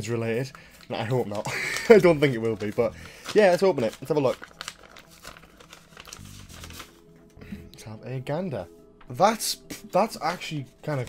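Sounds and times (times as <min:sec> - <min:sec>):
paper rustling and crinkling: 0:00.0 - 0:07.1, 0:10.1 - 0:11.0.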